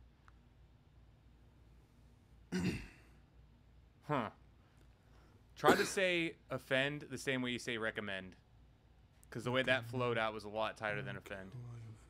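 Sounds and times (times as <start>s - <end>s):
man clearing throat: 2.5s - 3.1s, 5.6s - 6.0s.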